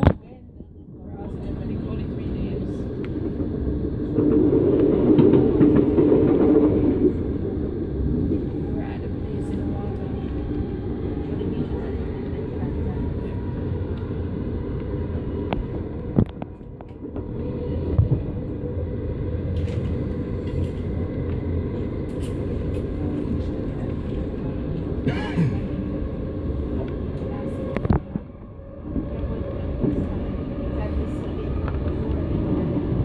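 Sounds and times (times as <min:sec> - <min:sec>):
train carriage rumbling on rails: 0:00.0 - 0:33.0.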